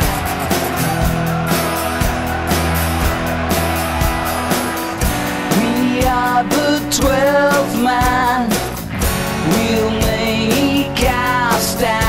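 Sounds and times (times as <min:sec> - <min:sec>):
instrumental rock music: 0:00.0 - 0:12.0.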